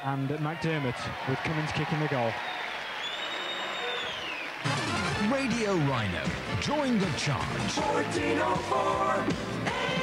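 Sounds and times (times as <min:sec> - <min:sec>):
jingle music with voices: 0:04.6 - 0:10.0.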